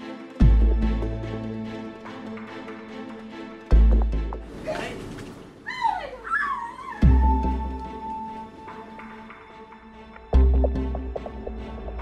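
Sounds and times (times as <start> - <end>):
high whining cries: 5.6 - 8.3.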